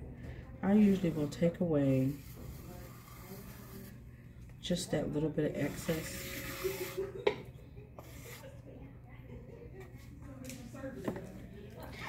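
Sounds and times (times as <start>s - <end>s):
pottery wheel humming: 0.0s - 12.0s
tool scraping clay: 0.6s - 4.1s, 4.7s - 7.0s, 8.0s - 8.6s.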